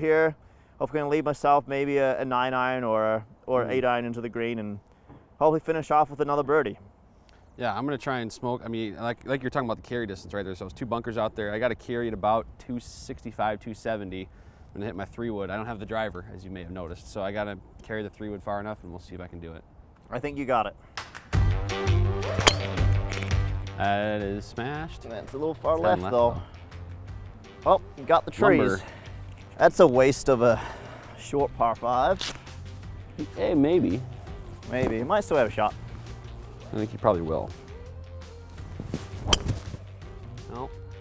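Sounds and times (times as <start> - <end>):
background music with bass: 21.3 - 41.0
golf club striking ball: 22.3 - 22.9, 39.2 - 39.8.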